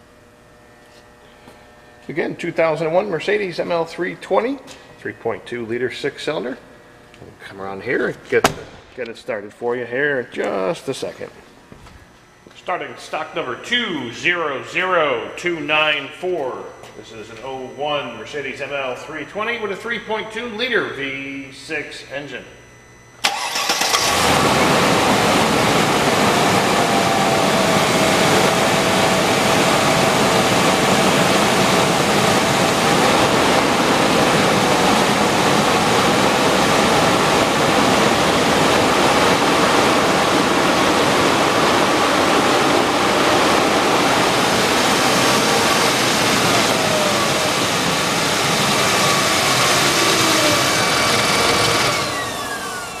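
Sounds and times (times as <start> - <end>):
car engine cranking and running: 23.2 - 53.0.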